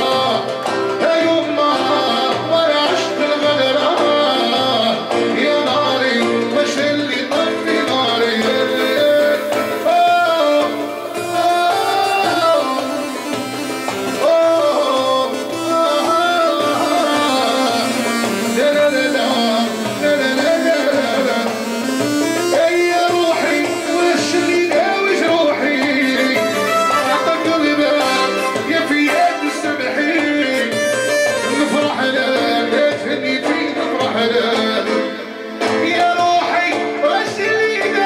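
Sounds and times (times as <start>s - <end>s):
darbuka rhythm: 0.0s - 38.0s
man singing into a microphone: 0.0s - 38.0s
synthesizer keyboard melody: 0.0s - 38.0s.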